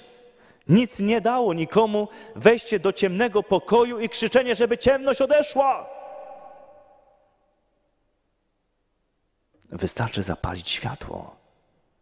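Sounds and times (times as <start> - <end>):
man's voice over sound system: 0.7 - 6.4, 9.6 - 11.4.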